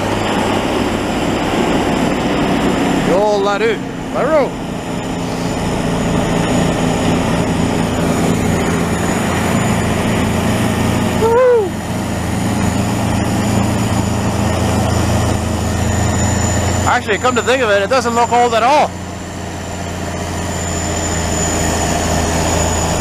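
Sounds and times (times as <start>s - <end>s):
diesel engine running under load: 0.0s - 23.0s
snow blowing: 0.0s - 23.0s.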